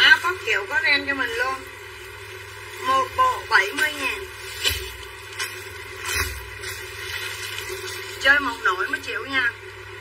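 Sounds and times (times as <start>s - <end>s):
low background hum: 0.0s - 10.0s
person speaking: 2.8s - 4.4s, 8.2s - 9.6s.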